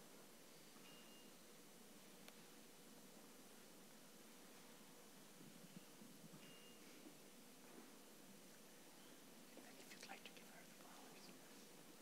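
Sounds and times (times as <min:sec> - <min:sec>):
faint whispering: 0:09.5 - 0:11.8.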